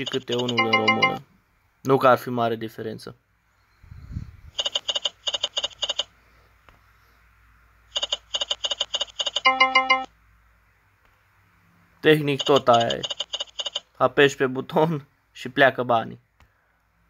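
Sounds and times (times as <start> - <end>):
held electronic chime: 0.0 - 1.2
quick electronic beeps: 0.0 - 1.2.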